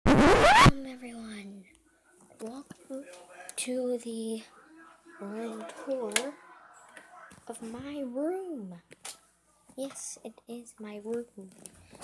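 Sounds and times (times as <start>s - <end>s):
scratchy rubbing noise: 0.1s - 0.8s
voice rising in pitch: 0.1s - 0.8s.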